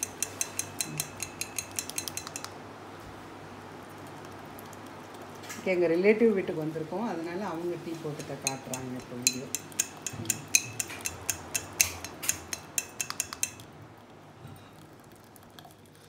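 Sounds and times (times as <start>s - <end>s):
strainer clicking against pans: 8.2s - 13.6s.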